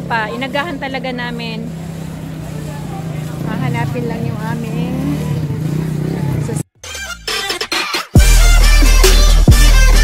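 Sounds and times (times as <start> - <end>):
low engine hum: 0.0 - 6.7
outdoor noise: 0.0 - 10.0.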